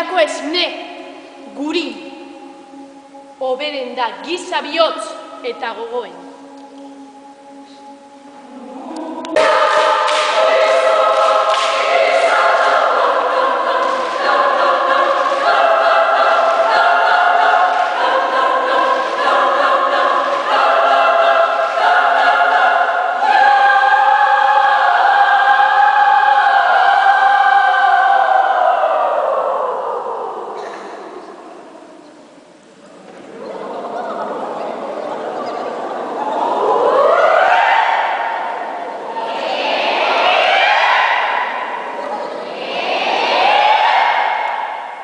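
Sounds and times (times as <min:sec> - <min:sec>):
choir singing in a church: 0:00.0 - 0:45.0.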